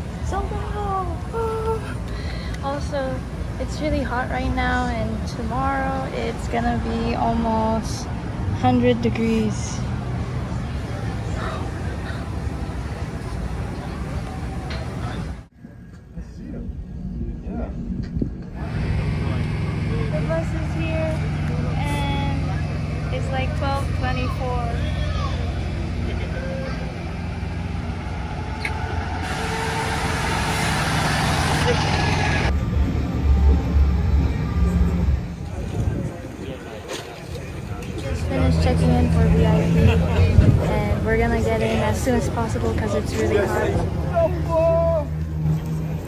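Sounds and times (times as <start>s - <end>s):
voices: 18.6s - 30.4s, 34.2s - 46.0s
diesel engine idling: 18.6s - 36.2s.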